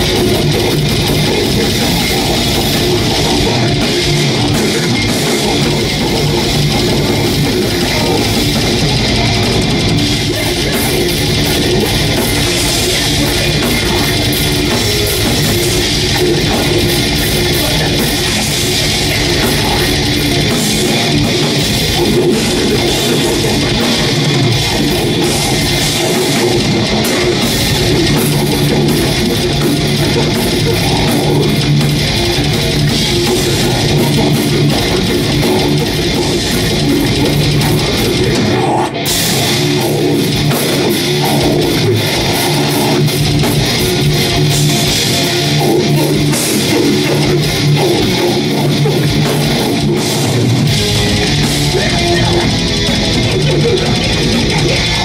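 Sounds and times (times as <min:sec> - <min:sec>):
death metal band playing: 0:00.0 - 0:55.0.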